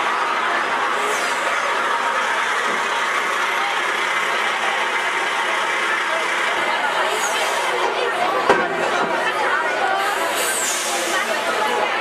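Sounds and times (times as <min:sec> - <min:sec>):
crowd chatter: 0:00.0 - 0:12.0
lorry diesel engine running: 0:00.0 - 0:12.0.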